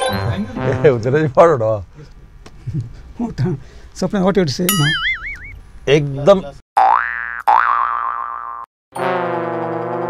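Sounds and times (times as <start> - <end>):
comic boing sound effect: 4.7 - 5.5, 6.8 - 10.0.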